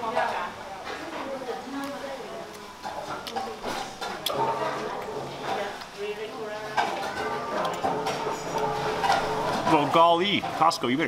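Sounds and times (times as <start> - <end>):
indistinct voices: 0.9 - 10.6
music: 7.2 - 9.9.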